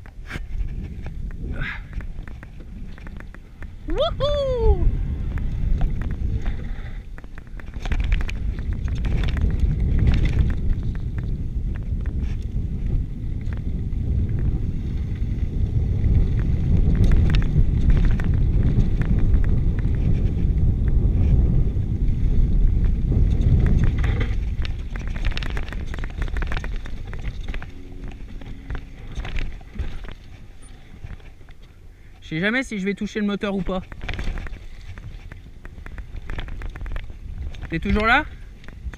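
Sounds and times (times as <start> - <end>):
bike clicks and rattles: 0.0 - 4.0, 5.0 - 38.9
wind rumbling on microphone: 0.0 - 38.9.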